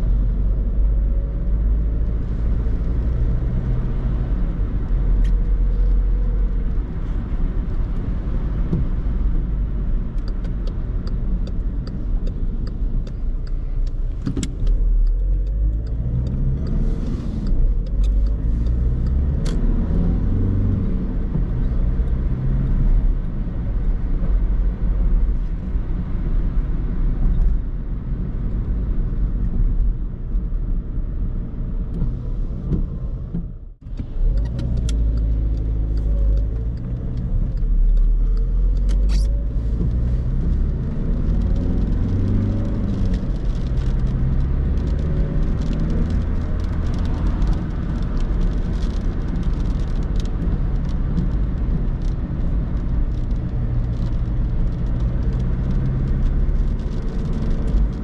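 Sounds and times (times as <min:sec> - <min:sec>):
diesel car engine rumble: 0:00.0 - 0:58.0.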